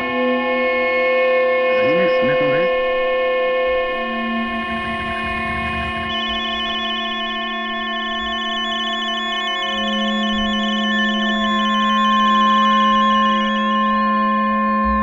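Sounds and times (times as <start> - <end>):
electronic music: 1.8 - 2.7, 6.0 - 15.0
low tone: 1.8 - 3.0, 5.2 - 15.0
tuning whistle gliding in pitch: 4.8 - 15.0
steady whistling tones: 6.1 - 14.0.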